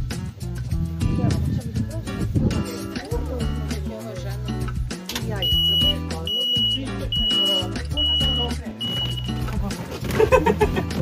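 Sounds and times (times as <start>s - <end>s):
music with blocky bass line: 0.0s - 11.0s
voices: 1.1s - 10.2s
vehicle reversing beeper: 5.5s - 9.4s.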